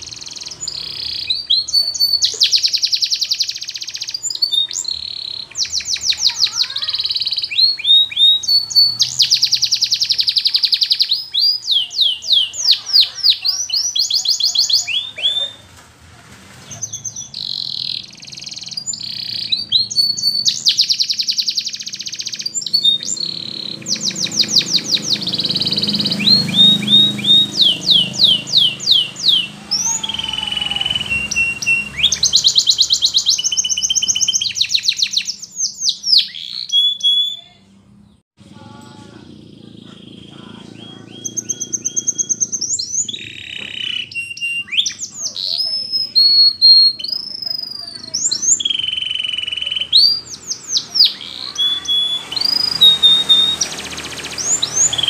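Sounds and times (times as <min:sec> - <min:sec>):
canary singing trills: 0:00.0 - 0:15.7, 0:16.6 - 0:55.0.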